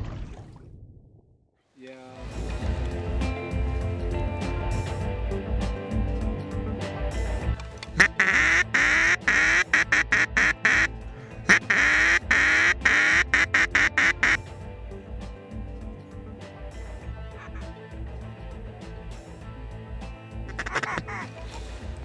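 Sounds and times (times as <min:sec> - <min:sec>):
background music: 0:01.8 - 0:22.0
duck call quacks: 0:08.0 - 0:14.4, 0:17.3 - 0:17.7, 0:20.5 - 0:21.6.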